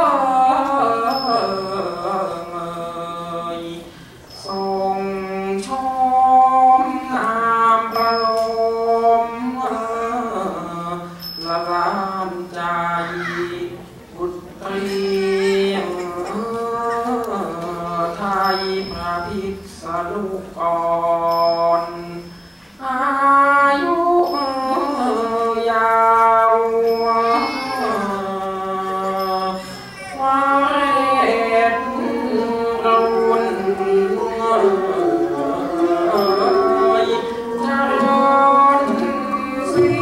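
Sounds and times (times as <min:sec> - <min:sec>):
person singing slow song: 0:00.0 - 0:40.0
small hand cymbals ringing: 0:01.0 - 0:02.8, 0:04.2 - 0:05.3, 0:07.8 - 0:09.6, 0:11.0 - 0:12.6, 0:18.1 - 0:19.8, 0:21.2 - 0:22.8, 0:24.2 - 0:30.4, 0:31.7 - 0:40.0
low sustained accompaniment: 0:31.7 - 0:40.0.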